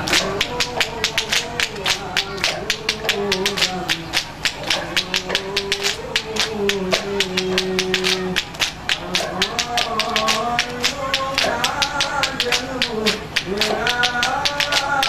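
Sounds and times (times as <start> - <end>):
man chanting into a microphone: 0.0 - 15.0
men clapping in rhythm: 0.0 - 15.0.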